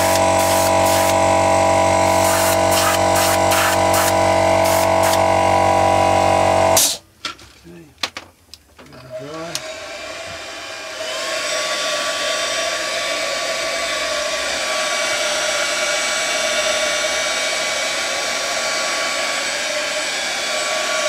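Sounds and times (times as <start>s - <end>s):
air compressor motor hum: 0.0s - 7.0s, 9.2s - 21.0s
spray gun hissing: 0.0s - 7.0s.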